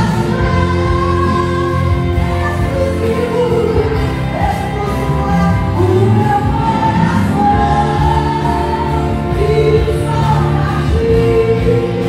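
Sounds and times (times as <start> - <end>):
group singing gospel: 0.0 - 12.0
keyboard accompaniment: 0.0 - 12.0
steady bass: 0.0 - 12.0.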